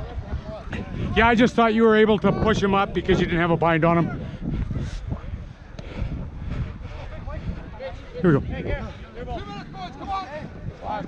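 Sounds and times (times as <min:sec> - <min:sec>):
wind rumble on microphone: 0:00.0 - 0:11.0
faint shouting voices: 0:06.7 - 0:11.0.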